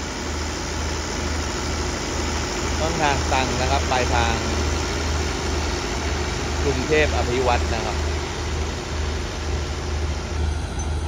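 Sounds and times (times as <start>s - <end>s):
idling diesel train hum: 0.0s - 11.0s.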